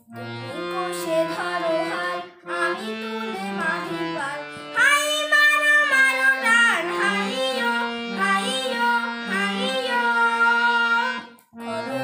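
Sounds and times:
instrumental accompaniment: 0:00.0 - 0:12.0
child singing: 0:00.1 - 0:12.0.

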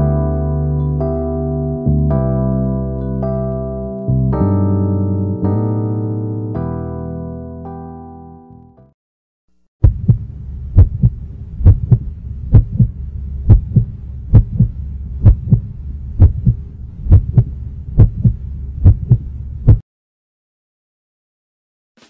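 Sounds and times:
heartbeat thumps: 0:09.8 - 0:19.8
steady low hum: 0:09.8 - 0:19.8.

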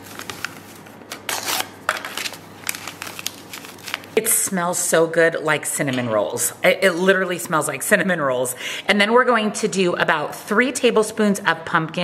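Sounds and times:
powder packets crinkling and rustling: 0:00.0 - 0:04.5.

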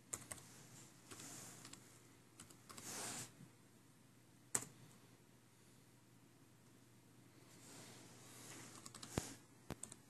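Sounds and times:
faint laptop keyboard typing: 0:00.0 - 0:03.0, 0:04.5 - 0:04.9, 0:08.5 - 0:10.0.

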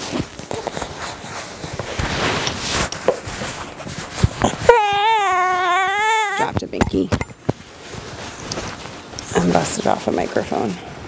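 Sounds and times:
fabric and straps rustling: 0:00.0 - 0:04.8, 0:07.4 - 0:11.0
baby crying: 0:04.4 - 0:06.6.

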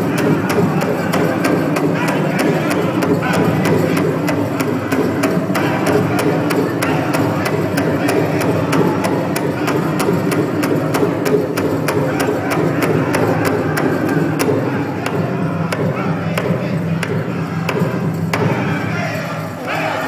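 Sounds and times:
drum beating fast: 0:00.0 - 0:19.0
group singing: 0:00.0 - 0:20.0.

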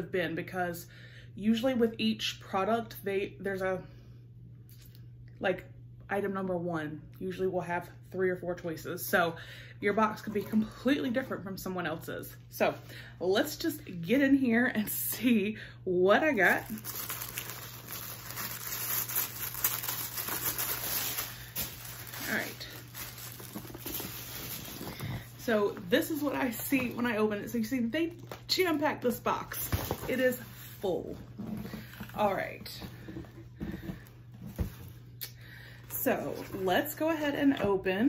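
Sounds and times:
paper packaging crinkling: 0:16.4 - 0:27.2.

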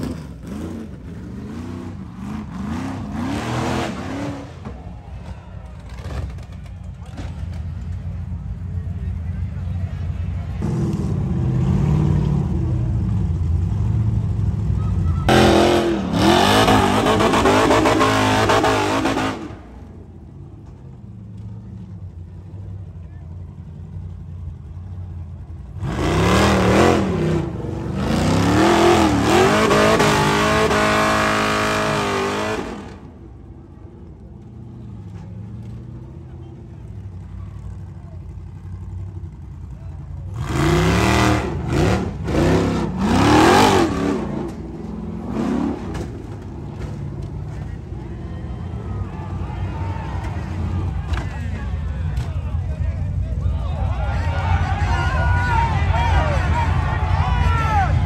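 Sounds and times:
buggy engine revving hard: 0:00.0 - 0:04.6, 0:15.2 - 0:19.7, 0:25.6 - 0:33.1, 0:40.2 - 0:46.6.

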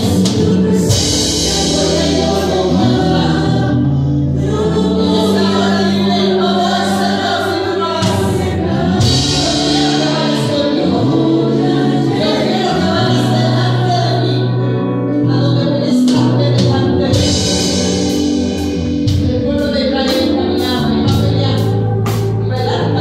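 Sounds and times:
drum kit with cymbals: 0:00.0 - 0:13.7, 0:15.9 - 0:23.0
electric bass guitar: 0:00.0 - 0:23.0
people singing: 0:00.0 - 0:23.0.

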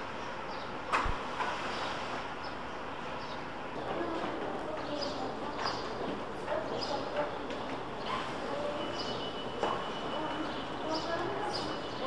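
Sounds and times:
street background hum: 0:00.0 - 0:12.0
passers-by voices: 0:03.8 - 0:12.0.

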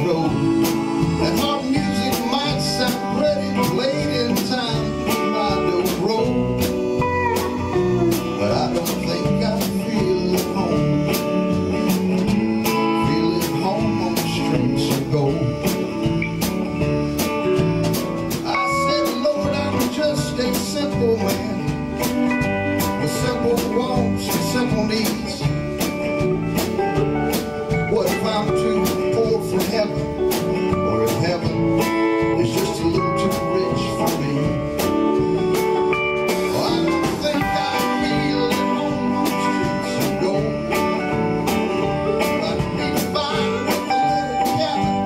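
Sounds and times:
acoustic guitar: 0:00.0 - 0:45.0
bass guitar: 0:00.0 - 0:45.0
drum kit steady beat: 0:00.0 - 0:45.0
electric guitar: 0:00.0 - 0:45.0
keyboard: 0:00.0 - 0:45.0.

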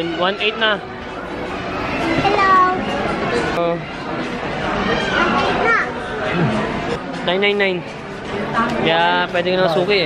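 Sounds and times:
voices in busy room: 0:00.0 - 0:10.0.

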